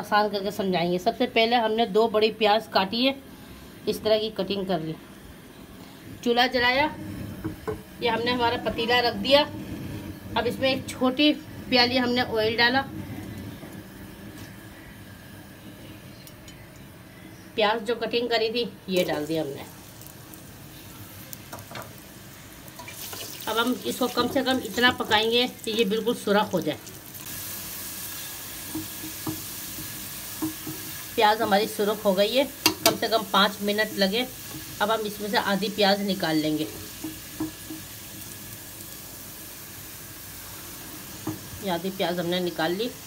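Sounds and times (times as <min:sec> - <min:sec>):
onions sizzling in oil: 0:06.2 - 0:15.6, 0:17.6 - 0:43.0.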